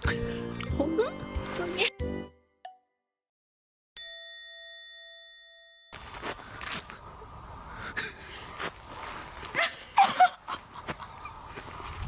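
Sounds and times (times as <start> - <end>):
woman laughing: 9.5 - 11.5.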